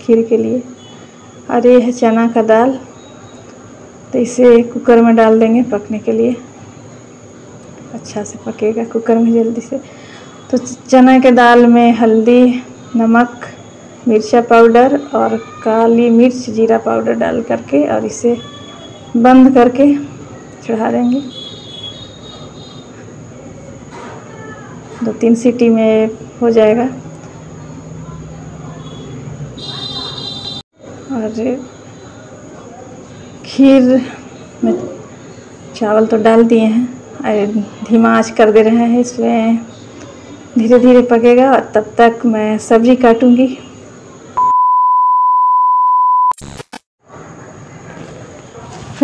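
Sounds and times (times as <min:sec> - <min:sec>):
test-tone beep: 0:44.4 - 0:46.4
static crackle: 0:46.3 - 0:46.9.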